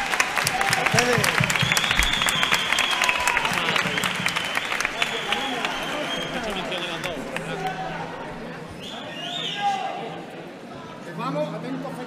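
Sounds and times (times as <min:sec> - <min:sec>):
audience applauding: 0:00.0 - 0:08.1.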